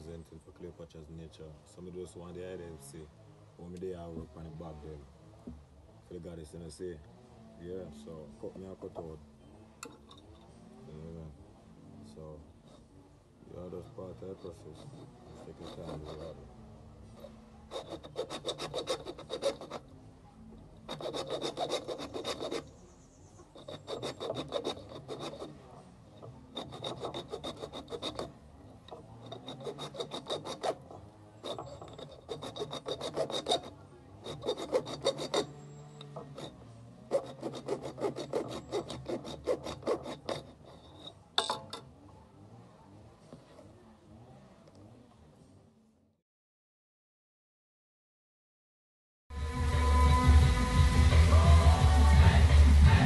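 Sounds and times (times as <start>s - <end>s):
saw rasping through gourd shell: 13.5s - 20.0s, 20.8s - 41.9s.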